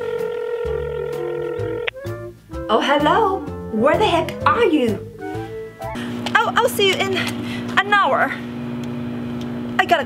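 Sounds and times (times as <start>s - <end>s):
background music: 0.0s - 6.7s.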